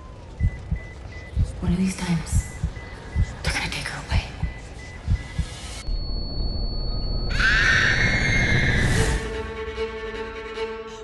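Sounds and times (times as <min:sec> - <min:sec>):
low rumble: 0:04.2 - 0:09.4
thin high ringing tone: 0:05.7 - 0:08.5.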